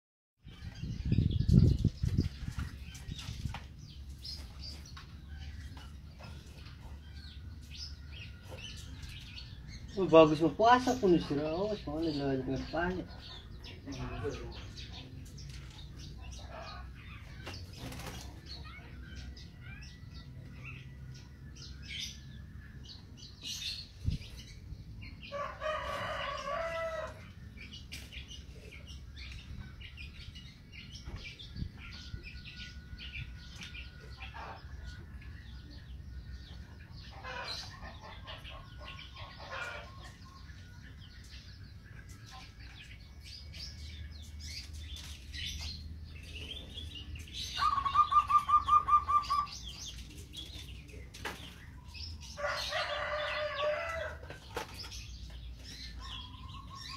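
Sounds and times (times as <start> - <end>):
birds chirping: 0.4 - 56.9
dove cooing: 47.6 - 49.5.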